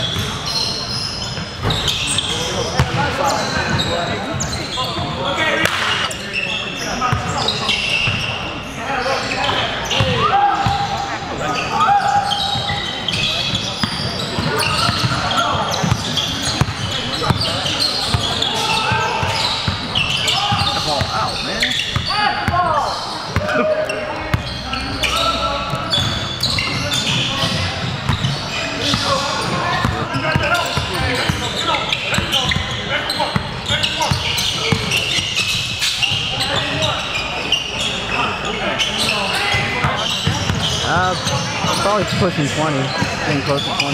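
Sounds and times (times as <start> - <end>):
voices in a large hall: 0.0 - 43.9.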